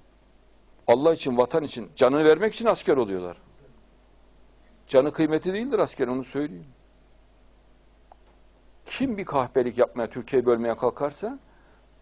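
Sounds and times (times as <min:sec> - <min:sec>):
man breathing in and speaking: 0:11.5 - 0:12.0.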